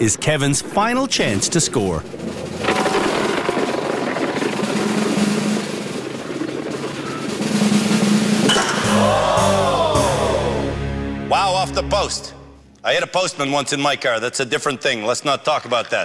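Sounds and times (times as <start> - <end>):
snare drum roll: 2.3 - 10.9
rising and falling pitched sound: 8.5 - 12.6.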